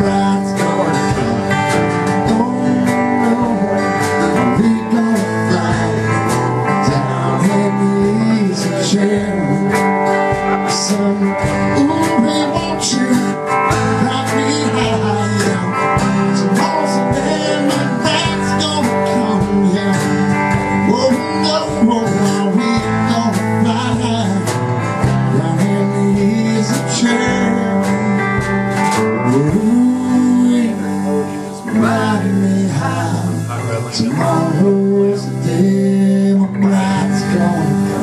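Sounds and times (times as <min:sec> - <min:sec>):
acoustic guitar strumming chords: 0:00.0 - 0:38.0
guitar solo with sliding notes: 0:00.0 - 0:38.0.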